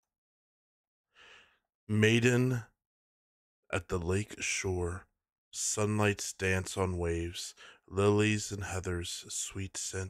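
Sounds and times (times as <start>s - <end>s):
faint breath: 1.1s - 1.7s, 7.6s - 7.9s
man speaking: 1.9s - 2.7s, 3.7s - 5.0s, 5.6s - 10.0s.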